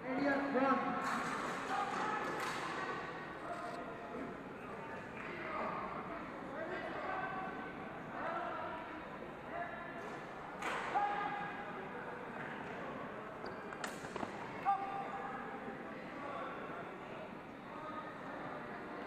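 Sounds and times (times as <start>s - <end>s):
chatter of many voices: 0.0s - 19.0s.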